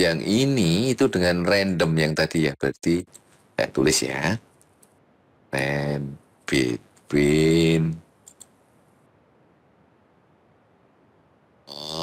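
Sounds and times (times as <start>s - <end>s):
computer keyboard keystrokes: 8.2s - 8.5s.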